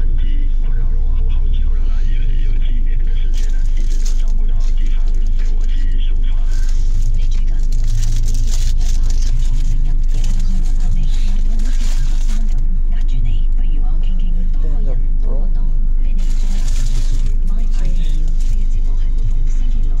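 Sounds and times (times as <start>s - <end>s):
car engine idling: 0.0s - 20.0s
indistinct voices: 0.0s - 20.0s.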